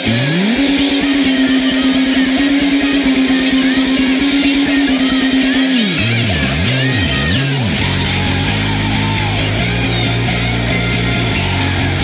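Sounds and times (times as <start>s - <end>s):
fast even drumming: 0.0s - 8.0s
electric bass pitch slide: 0.0s - 12.0s
rock band playing: 0.0s - 12.0s.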